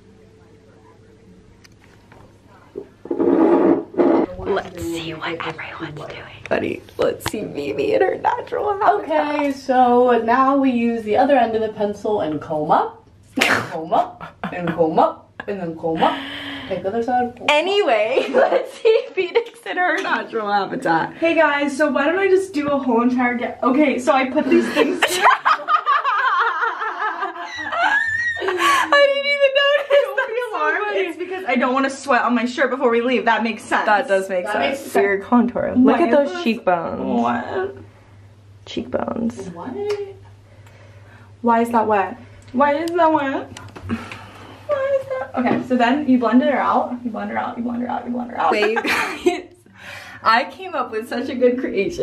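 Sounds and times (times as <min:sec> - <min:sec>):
low background hum: 0:00.0 - 0:52.0
young woman's voice: 0:04.3 - 0:13.0, 0:13.6 - 0:25.0, 0:28.4 - 0:37.8, 0:44.7 - 0:49.2
women laughing: 0:24.4 - 0:30.7, 0:48.5 - 0:49.6.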